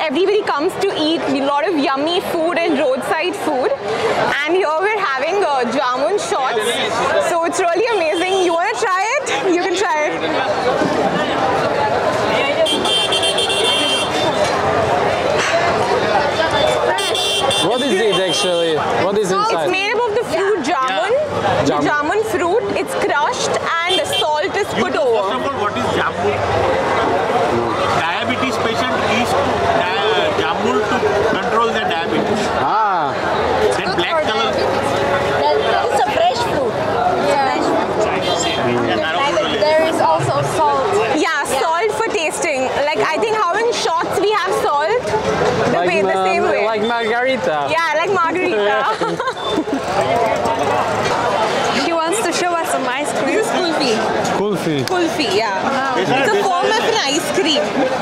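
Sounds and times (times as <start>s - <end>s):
crowd chatter: 0.0s - 58.0s
people talking: 0.0s - 58.0s
vehicle horn steady tone: 12.6s - 14.5s, 16.6s - 18.8s, 23.8s - 24.8s, 38.1s - 39.7s.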